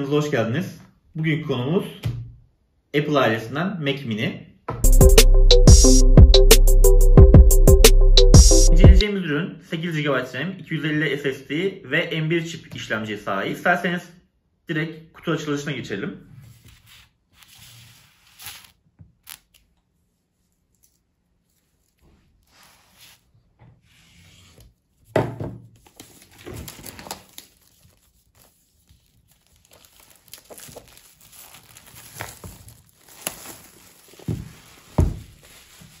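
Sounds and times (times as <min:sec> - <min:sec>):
plastic wrap crinkling: 0:25.8 - 0:36.0.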